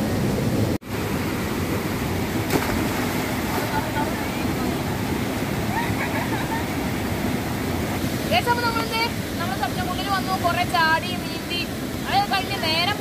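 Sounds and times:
stream rushing over rocks: 0.0s - 13.0s.

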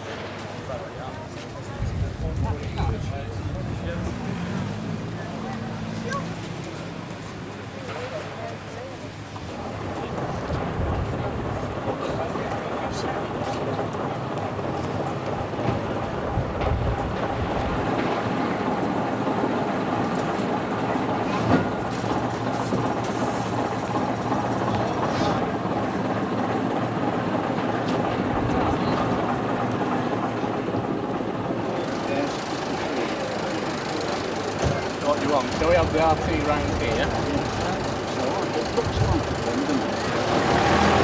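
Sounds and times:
bus diesel engine running: 0.0s - 41.0s
people talking: 0.0s - 41.0s.

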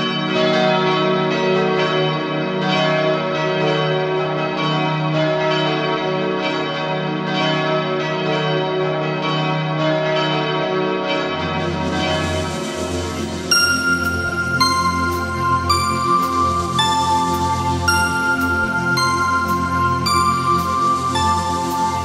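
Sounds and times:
bells pealing: 11.0s - 22.0s.

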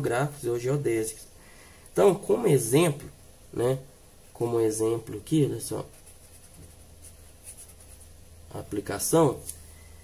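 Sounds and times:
marker scratching on paper: 5.8s - 8.2s.

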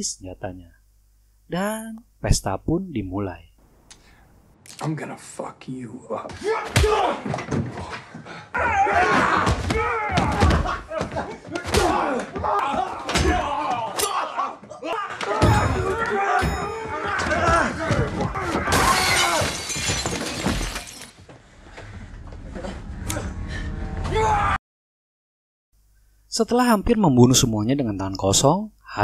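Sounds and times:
men grunting and shouting: 6.0s - 19.5s
glass shattering: 18.7s - 21.2s.

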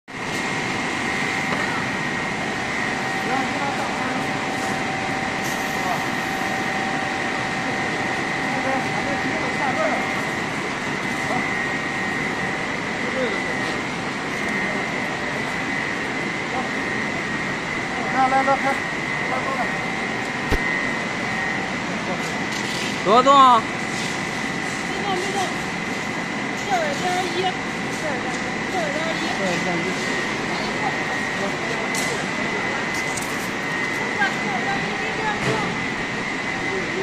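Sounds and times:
machine whining tones: 0.1s - 37.0s
machine hiss: 4.5s - 6.7s.

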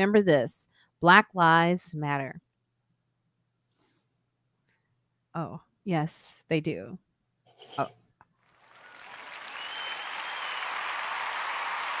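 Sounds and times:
applause: 8.4s - 12.0s.

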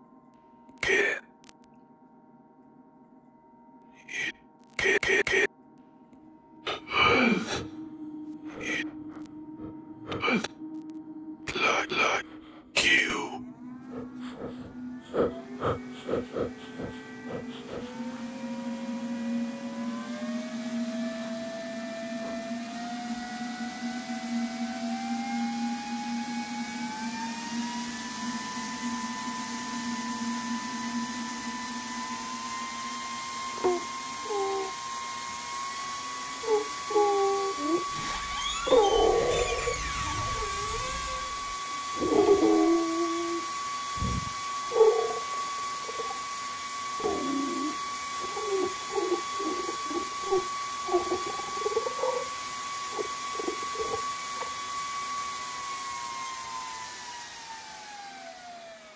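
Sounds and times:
climbing electronic tone: 13.5s - 24.3s, 36.4s - 44.4s
warped distorted sounds: 37.8s - 42.7s.

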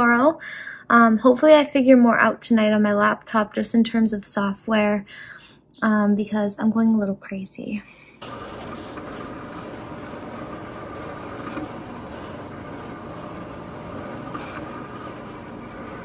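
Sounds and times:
cutting plotter motor running: 8.2s - 16.0s.

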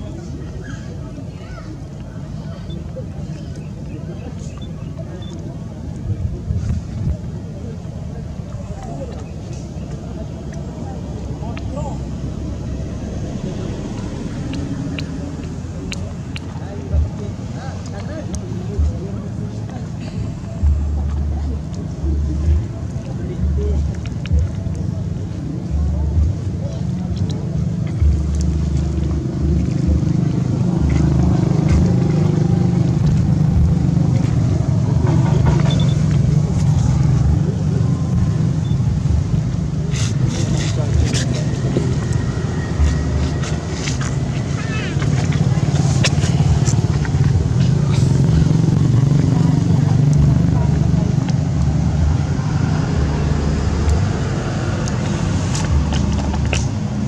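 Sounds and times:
faint voices: 0.0s - 57.0s
steady low rumble: 0.0s - 57.0s.

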